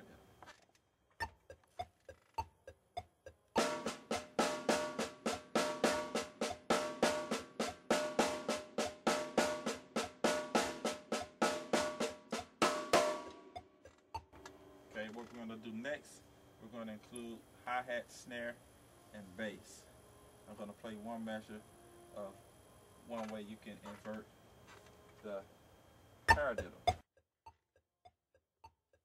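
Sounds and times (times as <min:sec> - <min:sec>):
snare drum played with sticks: 0:03.6 - 0:13.4, 0:26.3 - 0:27.0.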